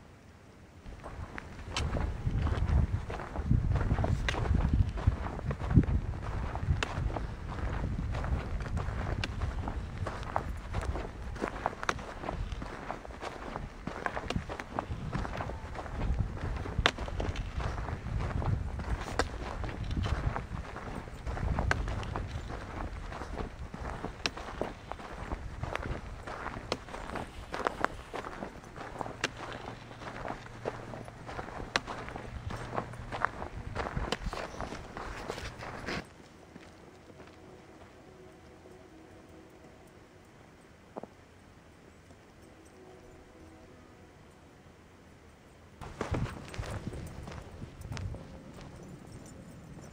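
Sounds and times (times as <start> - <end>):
faint outdoor background: 0.0 - 49.9
footsteps on sandy ground: 0.8 - 39.6, 45.8 - 49.9.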